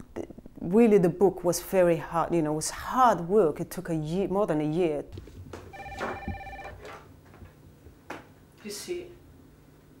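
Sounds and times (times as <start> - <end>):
desk telephone ringing: 5.7 - 7.0.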